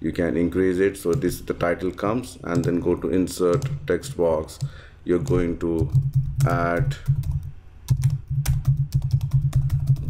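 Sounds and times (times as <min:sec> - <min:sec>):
keyboard typing: 0:02.5 - 0:02.9, 0:03.5 - 0:10.0.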